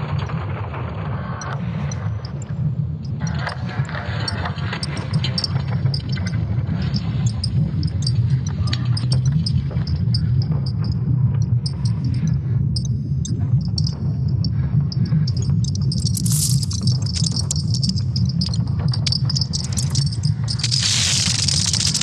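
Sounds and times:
scattered clicks: 0:01.4 - 0:22.0
steady low hum: 0:01.4 - 0:22.0.

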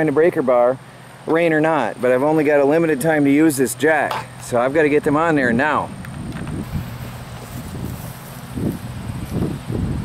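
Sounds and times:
wind buffeting microphone: 0:04.5 - 0:10.0.

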